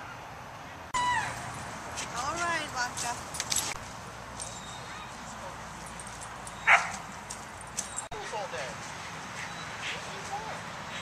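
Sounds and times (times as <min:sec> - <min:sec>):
dog barking: 0:06.6 - 0:07.0.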